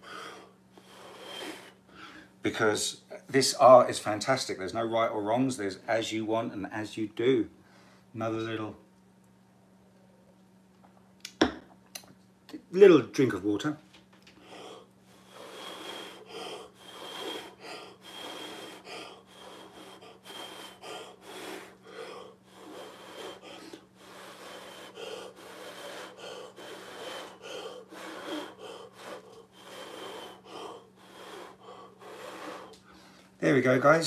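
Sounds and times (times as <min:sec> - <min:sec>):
person blowing through lips: 0:14.5 - 0:32.8.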